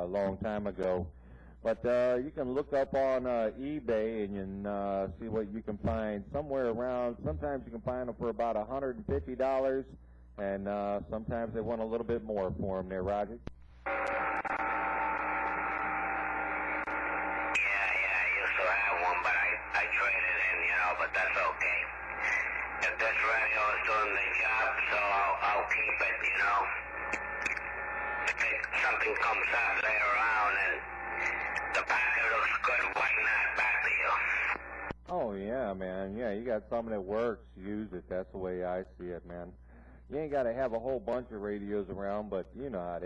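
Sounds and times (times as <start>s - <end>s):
radio hiss: 13.8s - 35.0s
steady radio tones: 13.8s - 35.0s
man talking over cb radio: 17.5s - 35.3s.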